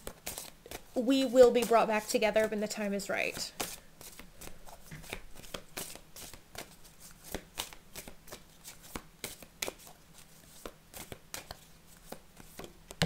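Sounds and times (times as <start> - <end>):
cards being shuffled: 0.0 - 1.8, 3.2 - 13.0.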